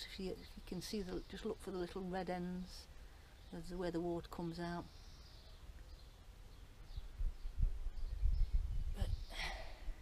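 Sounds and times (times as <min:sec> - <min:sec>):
faint bird chirps: 0:00.1 - 0:10.0
low rumble on microphone: 0:06.9 - 0:10.0.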